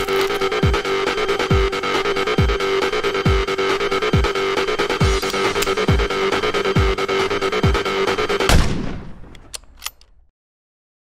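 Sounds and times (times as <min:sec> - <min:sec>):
electronic music with beat: 0:00.0 - 0:08.5
gunshot sound effect: 0:08.5 - 0:09.3.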